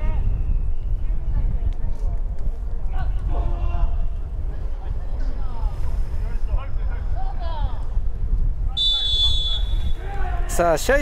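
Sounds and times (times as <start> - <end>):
distant players shouting: 8.8 - 10.9.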